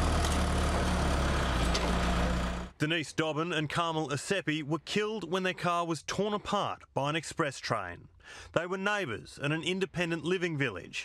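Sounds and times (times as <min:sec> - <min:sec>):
diesel engine running: 0:00.0 - 0:02.8.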